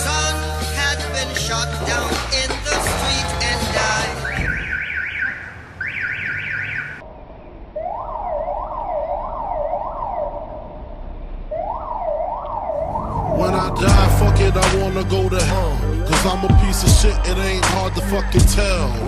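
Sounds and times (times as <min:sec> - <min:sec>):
music: 0:00.0 - 0:04.7, 0:12.8 - 0:19.0
siren wailing: 0:04.0 - 0:07.1, 0:07.7 - 0:18.2.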